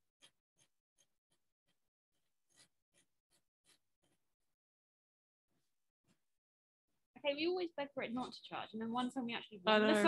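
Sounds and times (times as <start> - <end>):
faint quick scratches: 0.2 - 4.2.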